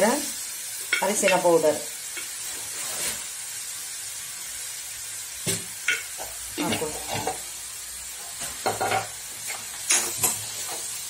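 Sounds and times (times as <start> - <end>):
vegetables sizzling in a pan: 0.0 - 11.0
ladle scraping and clattering on pan: 5.5 - 7.4, 8.4 - 11.0.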